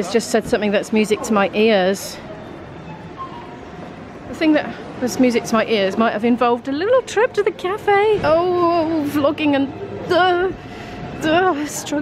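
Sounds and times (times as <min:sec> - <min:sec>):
store background noise: 0:00.0 - 0:12.0.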